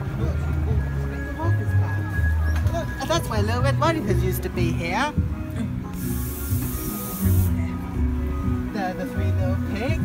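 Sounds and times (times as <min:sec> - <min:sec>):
ride music with steady beat: 0:00.0 - 0:10.0
hiss of spraying water: 0:06.0 - 0:07.6.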